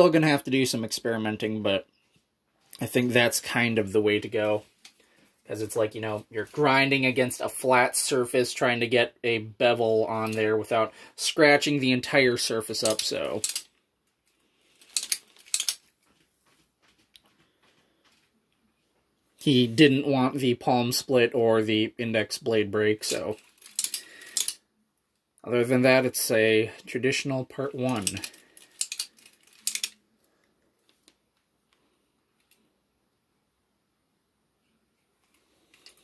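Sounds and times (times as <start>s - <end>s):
metal finger blades clicking: 12.8s - 13.7s, 14.9s - 15.8s, 28.8s - 30.0s.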